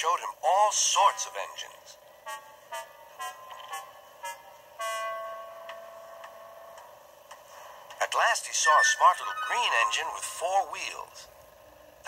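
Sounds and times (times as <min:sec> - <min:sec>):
steam engine whistle: 0:02.2 - 0:06.8.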